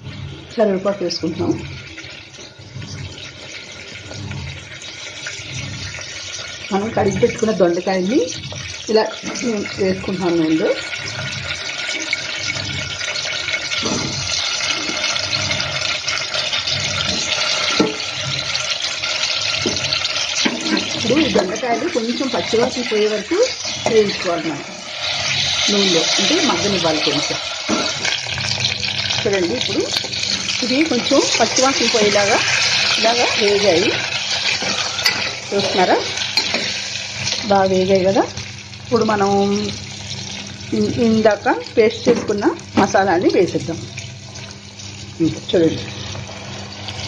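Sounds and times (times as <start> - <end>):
vegetables sizzling in hot oil: 0.0 - 47.0
metal spoon scraping pan: 10.8 - 37.4.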